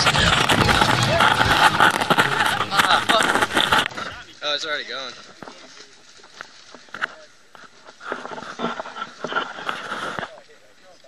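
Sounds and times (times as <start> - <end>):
men talking: 0.2 - 7.7.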